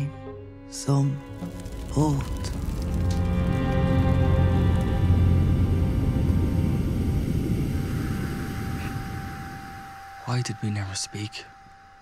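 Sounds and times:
held musical tones: 0:00.8 - 0:12.0
low rumbling drone: 0:01.0 - 0:12.0.

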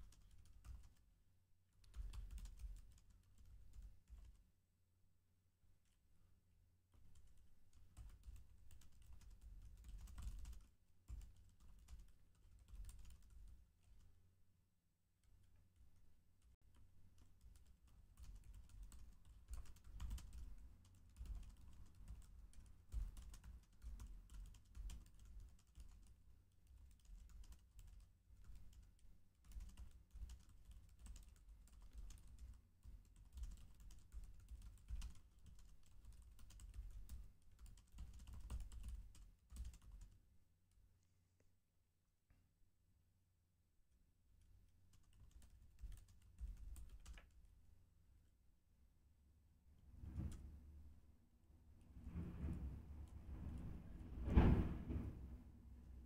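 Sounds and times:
computer keyboard typing: 0:00.0 - 0:01.1, 0:01.8 - 0:04.5, 0:07.0 - 0:14.1, 0:15.2 - 0:40.3, 0:44.9 - 0:47.4.

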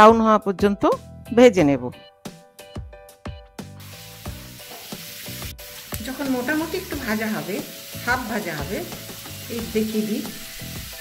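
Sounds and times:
food sizzling in oil: 0:03.8 - 0:11.0.

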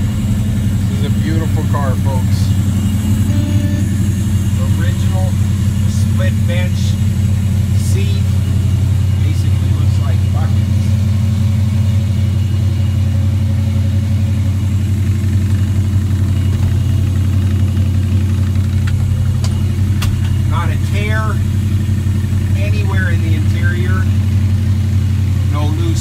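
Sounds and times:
car engine idling: 0:00.0 - 0:26.0.

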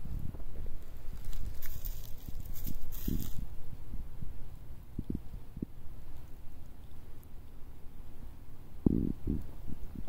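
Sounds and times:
rustling: 0:00.0 - 0:03.6
low rumble on microphone: 0:00.0 - 0:06.2, 0:08.7 - 0:10.0
short crackles: 0:00.8 - 0:03.5.

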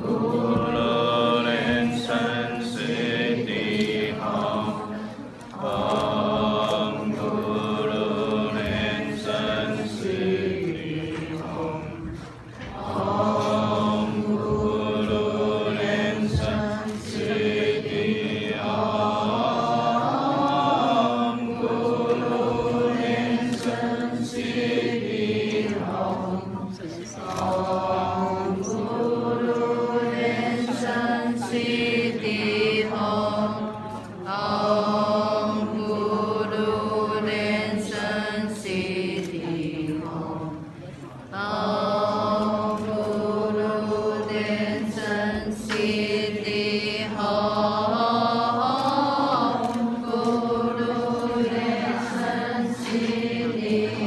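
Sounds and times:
group chanting in unison: 0:00.0 - 0:54.0.

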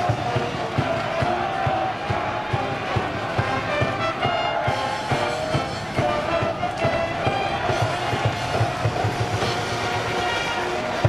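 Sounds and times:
steady drumbeat: 0:00.0 - 0:11.0
brass band chord: 0:02.8 - 0:11.0.

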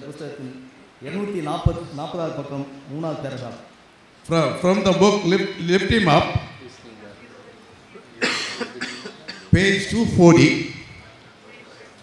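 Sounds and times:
man coughing: 0:08.2 - 0:09.6.

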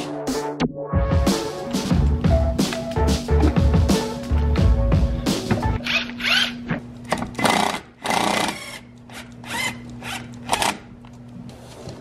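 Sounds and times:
cordless screwdriver motor whining: 0:07.4 - 0:10.8.

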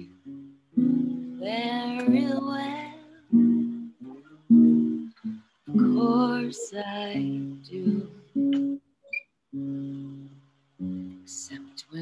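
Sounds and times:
acoustic guitar strumming: 0:00.0 - 0:11.7.

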